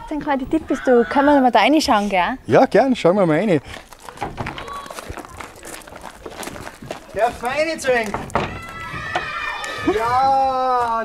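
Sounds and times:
footsteps on gravel: 3.0s - 11.0s.

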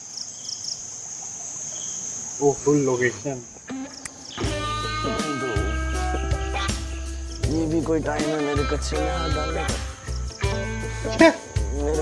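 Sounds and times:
short insect chirps: 0.0s - 7.6s, 9.6s - 11.6s
insects trilling: 0.0s - 12.0s.

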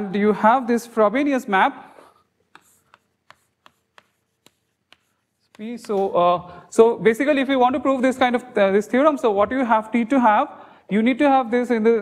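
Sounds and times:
chalk tapping on blackboard: 2.4s - 6.1s.

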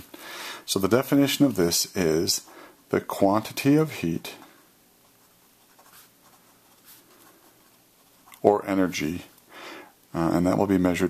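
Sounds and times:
pen scratching on paper: 5.0s - 8.5s.

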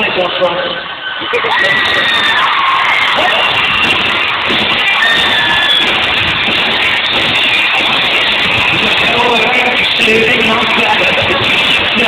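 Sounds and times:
crowd screaming and cheering: 0.0s - 12.0s
high shrieks: 0.7s - 12.0s.

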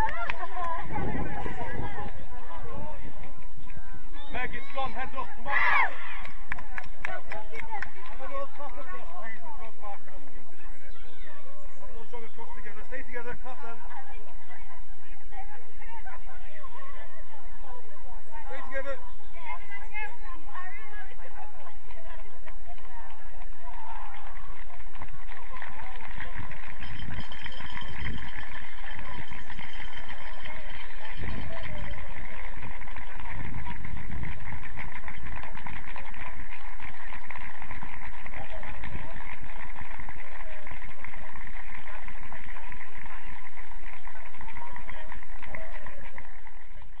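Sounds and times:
low rumbles: 0.0s - 3.7s
outdoor pitch-side noise: 0.0s - 47.0s.

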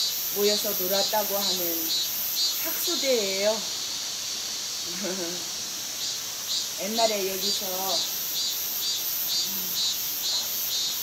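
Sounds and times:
insects chirping: 0.0s - 11.0s.

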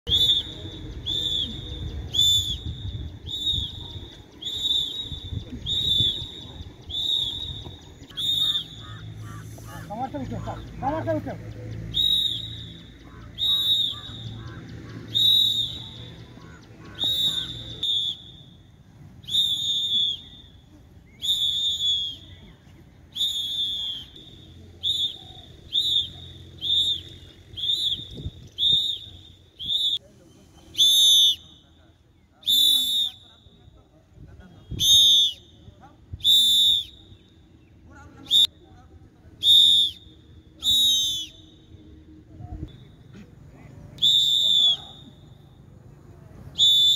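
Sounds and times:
whistle blasts: 0.0s - 10.6s, 11.8s - 43.2s, 43.9s - 46.9s.

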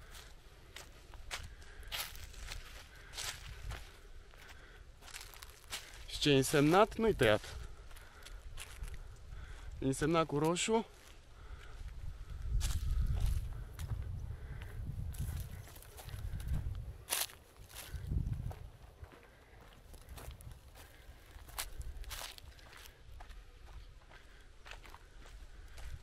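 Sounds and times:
footsteps crunching on dry ground: 0.0s - 26.0s
twigs cracking underfoot: 0.8s - 6.8s, 15.2s - 18.1s, 19.6s - 23.0s.

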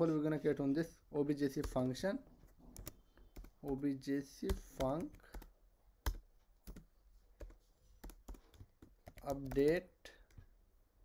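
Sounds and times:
computer keyboard keys clicking: 4.5s - 10.4s.

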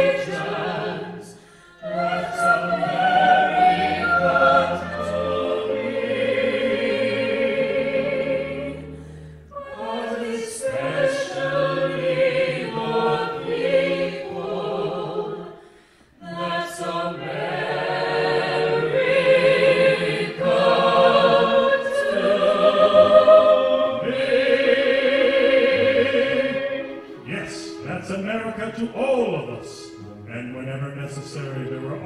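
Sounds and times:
pops orchestra: 0.0s - 32.0s
singers in harmony: 0.0s - 32.0s.

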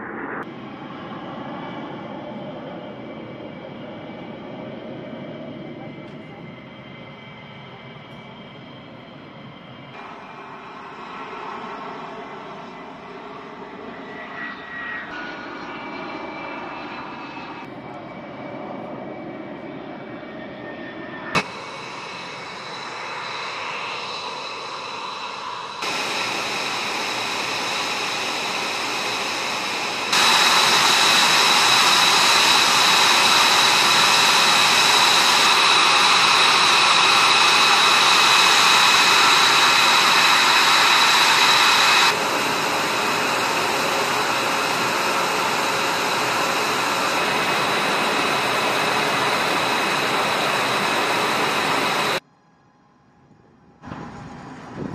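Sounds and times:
jet engine whine: 0.0s - 54.9s.

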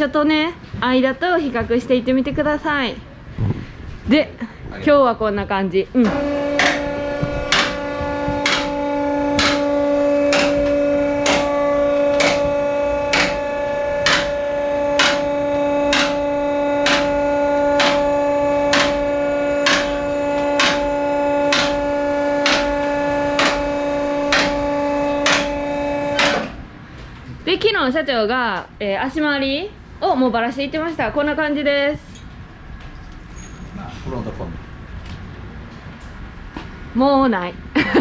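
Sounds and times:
electric pump motor hum: 6.0s - 27.4s.

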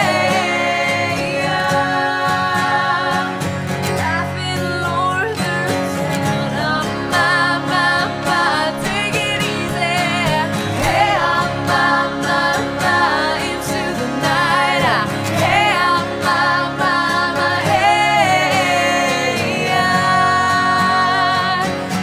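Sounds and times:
acoustic guitars strumming: 0.0s - 22.0s
woman singing: 0.0s - 22.0s.

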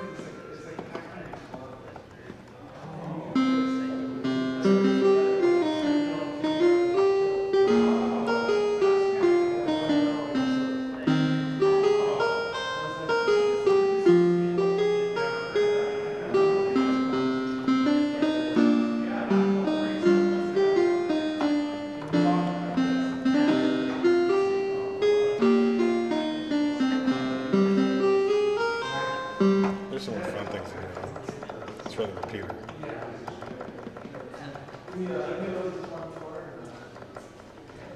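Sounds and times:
chiptune piano melody: 3.1s - 37.9s
voices: 15.2s - 37.9s.

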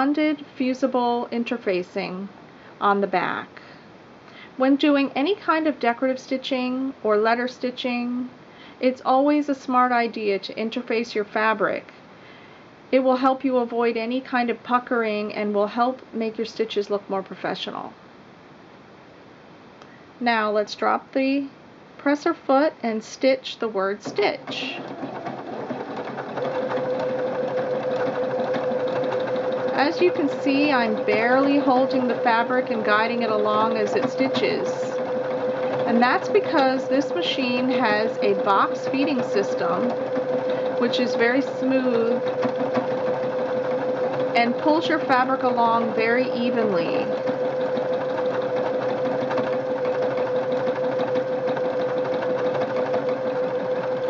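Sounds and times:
sewing machine stitching: 23.8s - 54.0s
steady whine: 26.2s - 54.0s.

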